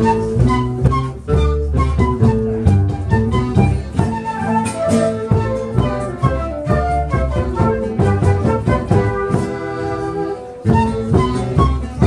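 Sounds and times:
flute ensemble playing folk melody: 0.0s - 12.0s
low bass line: 0.0s - 12.0s.

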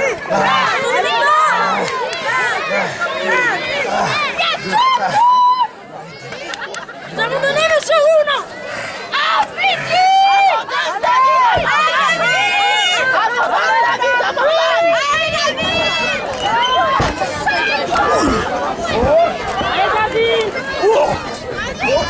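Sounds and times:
crowd shouting and cheering: 0.0s - 22.0s.

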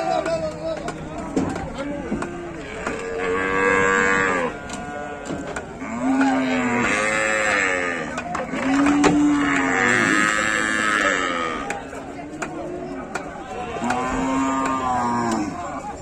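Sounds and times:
cattle mooing: 2.1s - 11.8s, 12.6s - 15.8s.

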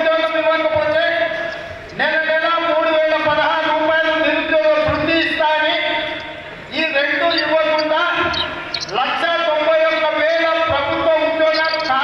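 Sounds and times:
man speaking over loudspeaker: 0.0s - 12.0s.

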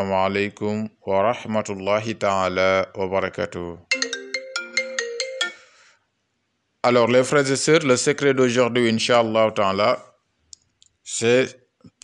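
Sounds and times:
man's voice: 0.0s - 3.9s, 6.8s - 10.1s, 11.1s - 12.0s
electronic chime melody: 3.9s - 5.8s.

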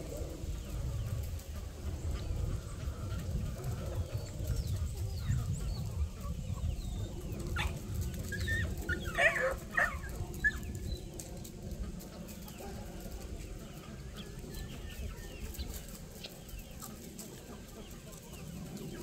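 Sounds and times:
chickens clucking and calling: 0.0s - 19.0s.

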